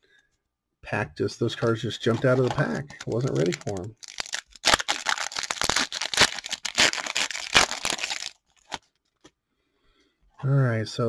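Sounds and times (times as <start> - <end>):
foil wrapper tearing and crinkling: 2.2 - 9.2.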